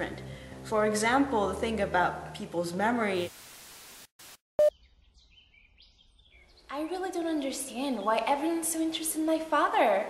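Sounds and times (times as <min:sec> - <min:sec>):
faint bird chirps: 0:04.6 - 0:06.9.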